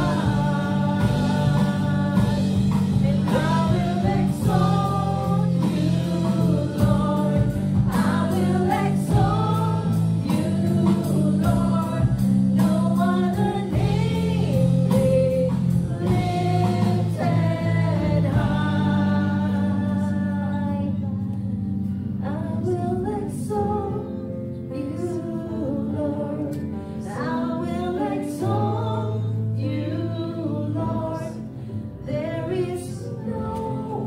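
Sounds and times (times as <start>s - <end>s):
drums: 0.0s - 20.3s
voices singing together: 0.0s - 21.1s, 22.2s - 34.0s
guitars: 0.0s - 25.0s
keyboard chords: 0.0s - 34.0s.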